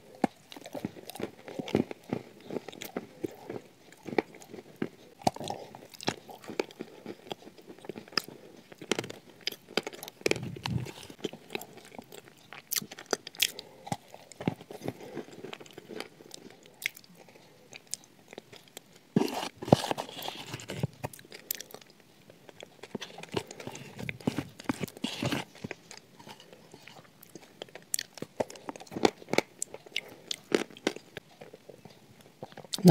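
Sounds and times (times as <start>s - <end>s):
biscuit crunching and chewing: 0.0s - 32.9s.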